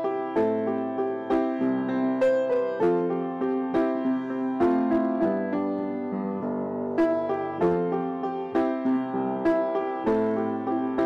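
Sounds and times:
grand piano playing chords: 0.0 - 11.0.

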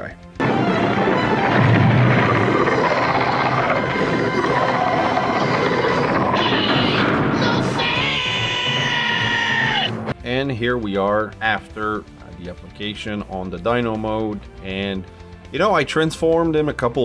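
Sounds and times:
rumbling crashing ground-shaking effect: 0.4 - 8.2
cartoon music: 0.4 - 10.2
long held pitched cry: 2.4 - 10.0.

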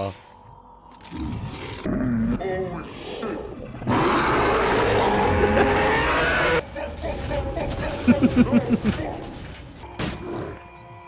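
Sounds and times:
creature growling and roaring: 0.9 - 6.6.

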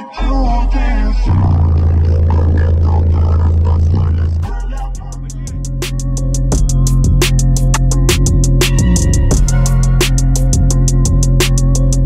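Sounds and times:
subwoofer deep bass note: 0.2 - 12.0.

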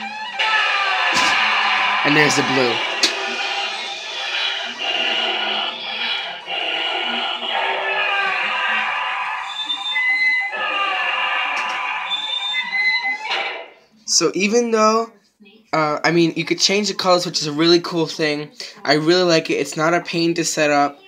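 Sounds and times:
eerie electronic soundtrack: 0.0 - 13.8.

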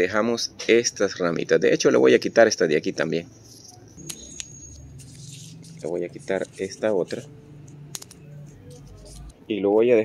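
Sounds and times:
leaves rustling: 3.5 - 7.3
leaves snapping off branch: 7.9 - 8.2.

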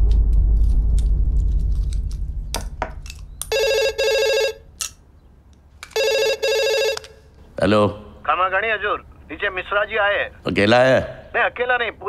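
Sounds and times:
telephone double ring: 3.5 - 4.6, 6.0 - 7.2.

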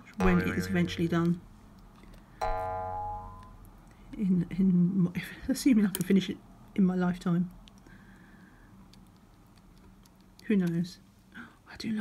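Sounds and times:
bright chime ringing: 0.2 - 1.0, 2.4 - 3.6.

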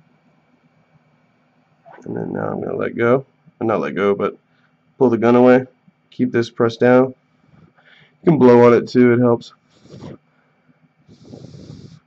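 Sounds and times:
person blowing a breath: 7.7 - 8.2, 9.7 - 10.2, 11.1 - 12.0.

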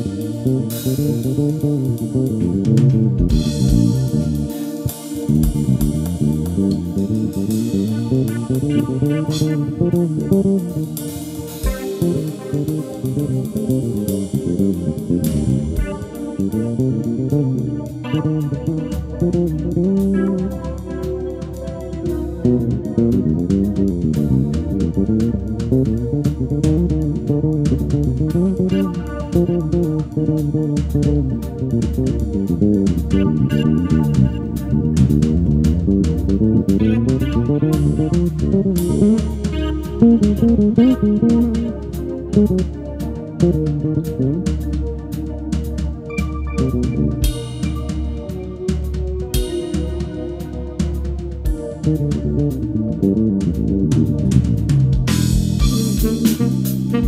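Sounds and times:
drum kit: 0.0 - 57.0
electric bass guitar melody: 0.0 - 57.0
keyboard playing: 0.0 - 57.0.

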